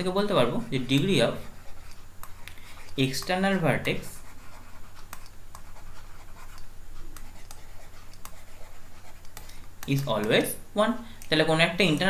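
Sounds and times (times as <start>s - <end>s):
pen scratching on tablet: 0.8s - 10.5s.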